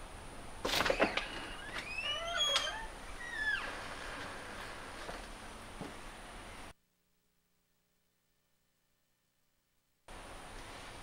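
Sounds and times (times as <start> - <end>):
door hinges creaking: 0.6 - 5.4.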